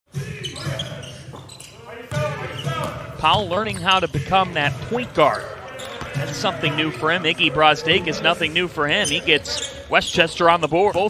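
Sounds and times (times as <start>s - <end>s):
voices in a gym: 0.1s - 11.0s
sneaker squeaks: 0.2s - 6.4s, 8.9s - 11.0s.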